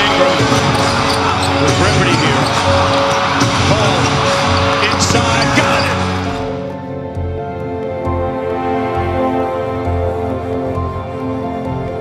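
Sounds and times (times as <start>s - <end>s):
arena crowd noise: 0.0s - 7.0s
background music: 0.0s - 12.0s.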